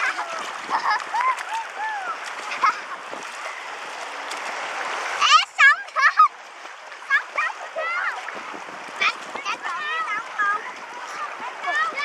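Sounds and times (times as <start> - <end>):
sea water splashing: 0.0 - 12.0.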